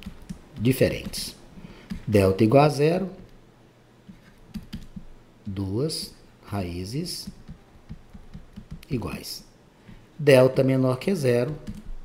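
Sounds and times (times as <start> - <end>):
stylus tapping on pen tablet: 4.1 - 5.1, 7.2 - 8.9.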